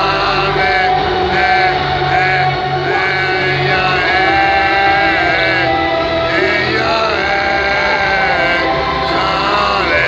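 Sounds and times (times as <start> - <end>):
crowd singing along: 0.0 - 10.0
loud stage music: 0.0 - 10.0.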